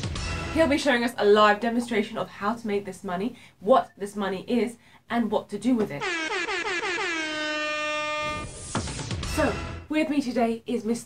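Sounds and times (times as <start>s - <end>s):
horn blasts sliding down in pitch: 6.0s - 8.8s.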